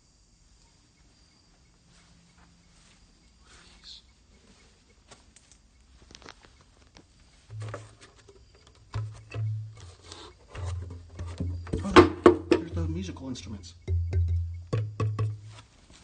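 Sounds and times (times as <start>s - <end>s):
wooden boxes clacking and knocking: 7.5s - 13.0s, 13.8s - 15.5s.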